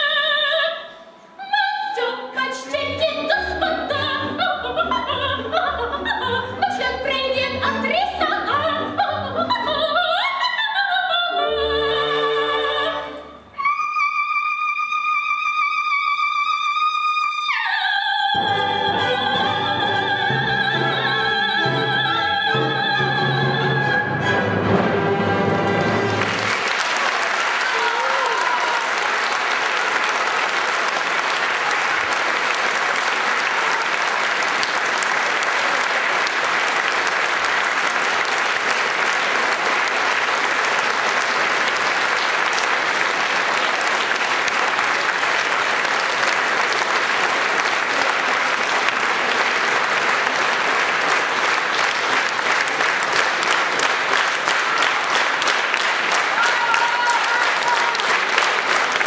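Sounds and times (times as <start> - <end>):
audience applauding: 25.6 - 59.0.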